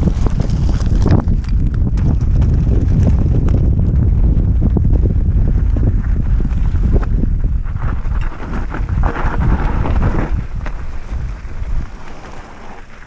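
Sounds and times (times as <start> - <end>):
bike tyres rolling over stones: 0.0 - 13.0
wind buffeting microphone: 0.0 - 13.0.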